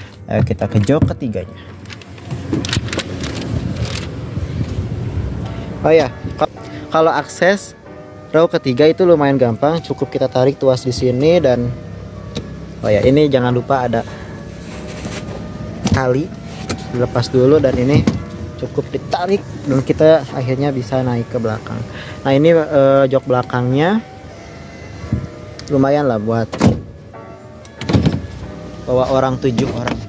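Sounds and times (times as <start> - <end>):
handling rustle: 1.7 - 4.2, 13.9 - 18.3
low steady rumble: 1.8 - 6.9
car door clicks: 12.3 - 12.6, 17.7 - 18.4, 26.5 - 27.0, 27.6 - 28.4.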